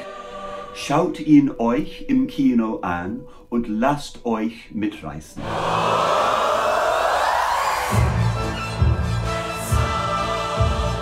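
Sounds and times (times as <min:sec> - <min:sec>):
group of voices sliding upward: 0:05.4 - 0:08.7.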